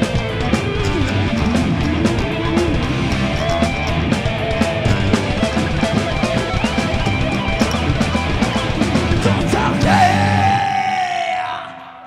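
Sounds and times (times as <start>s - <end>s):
heavy metal band: 0.0s - 12.0s.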